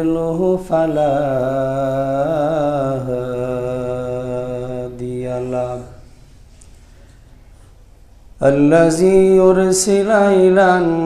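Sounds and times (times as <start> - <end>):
man chanting: 0.0 - 6.3, 8.4 - 11.0.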